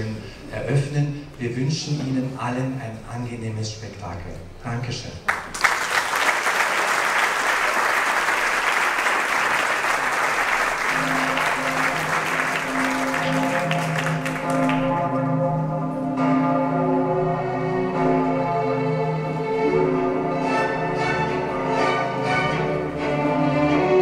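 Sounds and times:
audience applause: 0:05.3 - 0:15.1
classical string music: 0:07.5 - 0:24.0.

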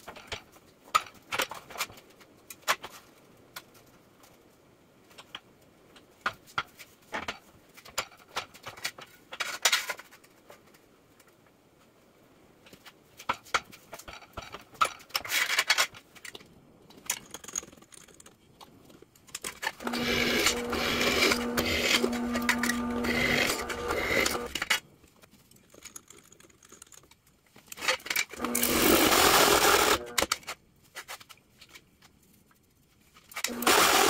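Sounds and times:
drill press drilling steel: 0:19.8 - 0:24.5, 0:28.4 - 0:30.3, 0:33.5 - 0:34.0.

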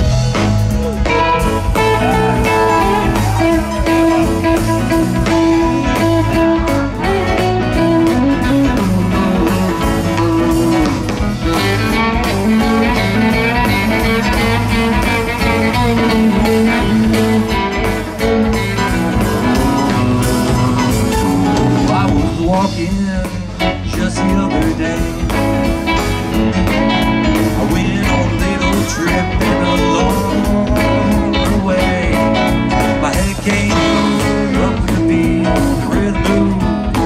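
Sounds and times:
electric guitar lead: 0:00.0 - 0:37.0
live rock band playing: 0:00.0 - 0:37.0.

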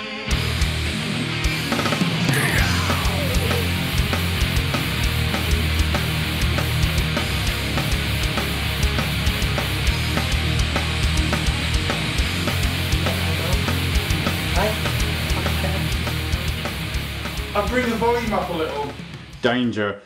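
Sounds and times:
heavy rock music: 0:00.0 - 0:19.5.

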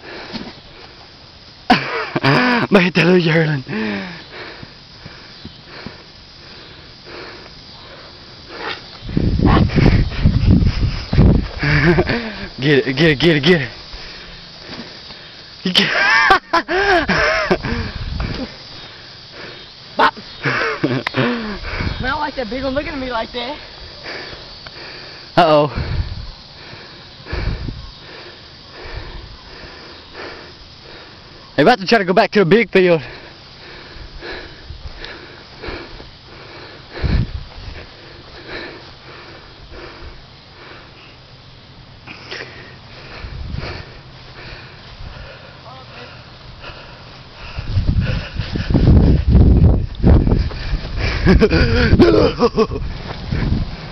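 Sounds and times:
faint hiss: 0:00.0 - 0:53.9
person breathing: 0:03.6 - 0:12.6, 0:13.7 - 0:15.6, 0:17.6 - 0:19.8, 0:20.4 - 0:22.1, 0:23.6 - 0:31.5, 0:33.0 - 0:41.4, 0:42.0 - 0:52.1
wind buffeting microphone: 0:09.0 - 0:12.6, 0:17.0 - 0:18.6, 0:21.3 - 0:23.1, 0:25.7 - 0:28.1, 0:36.9 - 0:38.0, 0:43.0 - 0:45.3, 0:47.3 - 0:53.9.

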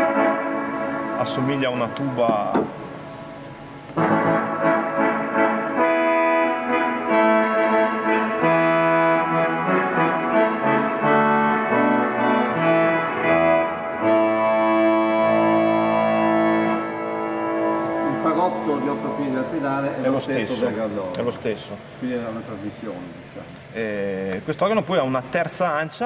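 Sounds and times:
pipe organ reed chords: 0:00.0 - 0:21.1.

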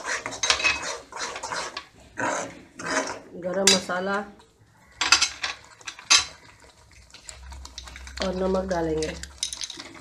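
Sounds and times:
metal spoon clinking on pan: 0:09.0 - 0:09.9.

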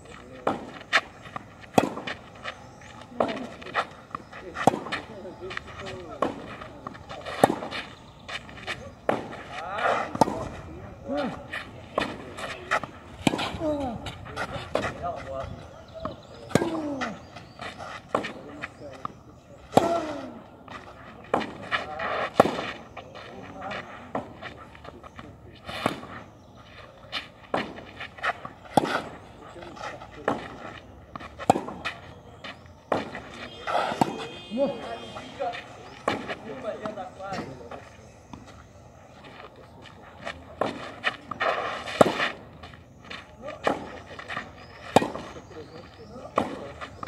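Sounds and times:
tennis balls struck by rackets: 0:00.0 - 0:38.7, 0:39.4 - 0:47.0
tennis ball pops: 0:44.9 - 0:45.3.

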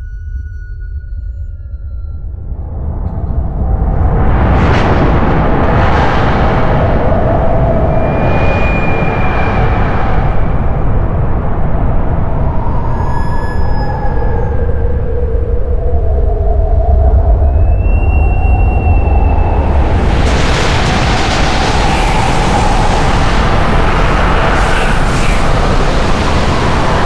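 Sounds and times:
long held high tones: 0:00.0 - 0:02.6
loud low rumble: 0:00.0 - 0:12.5, 0:14.2 - 0:27.0.

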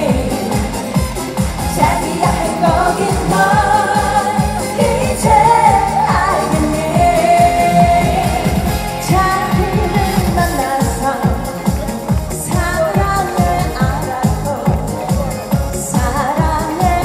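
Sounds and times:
woman singing into a microphone: 0:00.0 - 0:00.9, 0:01.6 - 0:17.0
backing track with dance beat: 0:00.0 - 0:17.0.

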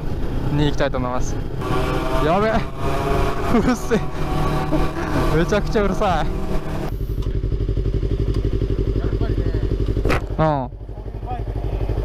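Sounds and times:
two-stroke motorcycle engine running: 0:00.0 - 0:12.0.

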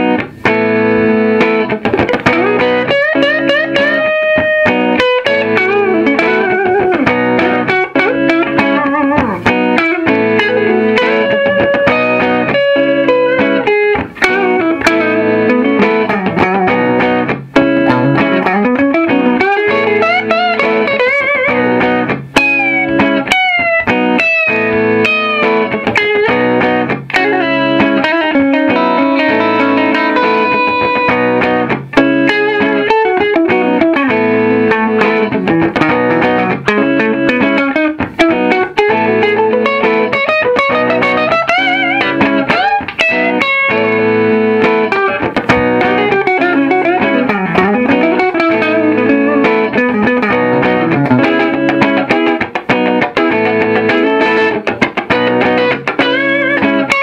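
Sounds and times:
electric guitar lead lines: 0:00.0 - 0:57.0
looped rhythm guitar: 0:00.0 - 0:57.0.

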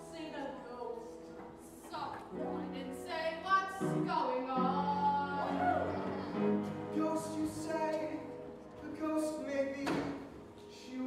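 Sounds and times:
instrumental accompaniment: 0:00.0 - 0:11.0
person singing: 0:04.3 - 0:06.0.

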